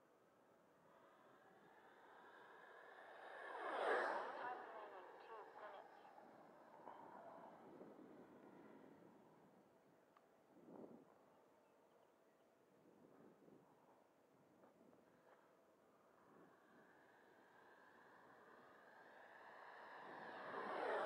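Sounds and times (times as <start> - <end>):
model jet fan flying past: 1.0 - 9.2, 16.3 - 21.0.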